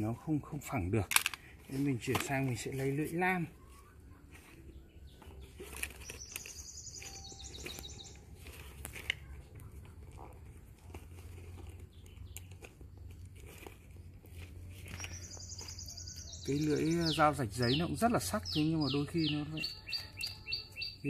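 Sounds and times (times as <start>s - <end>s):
small bird trilling: 5.9s - 8.5s, 14.9s - 21.0s.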